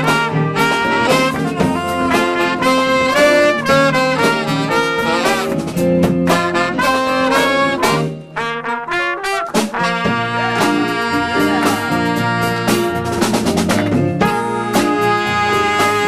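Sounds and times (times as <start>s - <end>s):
horn stabs: 0.0s - 16.0s
jazz band playing: 0.0s - 16.0s.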